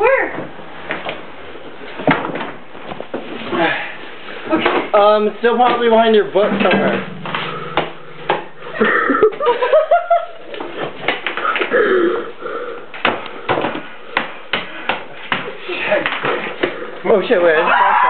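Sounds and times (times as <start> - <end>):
household items knocking and clattering: 5.5 - 9.5.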